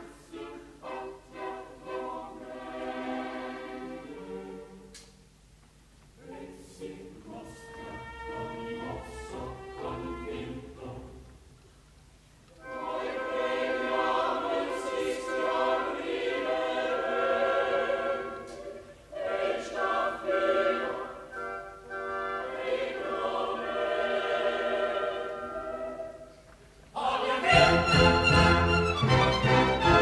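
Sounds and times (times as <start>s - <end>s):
opera chorus singing: 0.0s - 4.9s, 6.2s - 11.4s, 12.6s - 30.0s.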